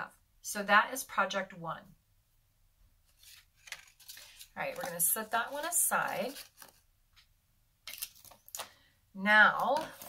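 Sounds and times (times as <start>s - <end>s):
paper rustling: 3.0s - 6.9s, 7.8s - 8.8s.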